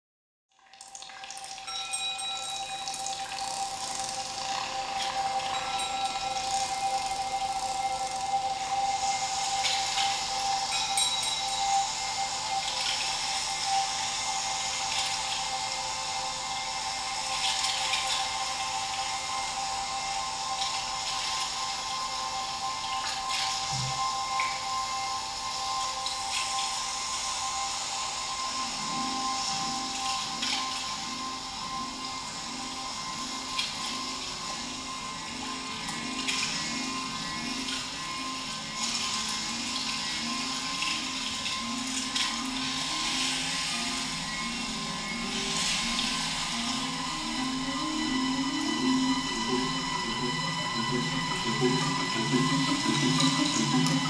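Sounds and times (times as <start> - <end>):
low wavering sound: 1.4 - 54.0
hissing noise wash: 3.5 - 54.0
steady held tones: 18.2 - 54.0.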